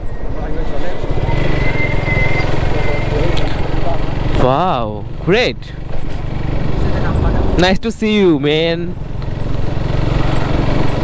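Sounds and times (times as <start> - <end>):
road and wind noise: 0.0 - 11.0
motorcycle engine running: 1.0 - 11.0.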